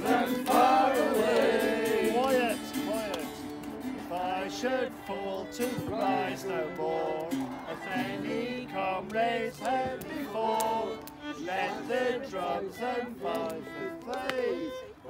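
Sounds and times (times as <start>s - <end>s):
group of voices singing: 0.0s - 2.7s, 3.9s - 14.8s
strummed acoustic guitars: 0.0s - 12.1s.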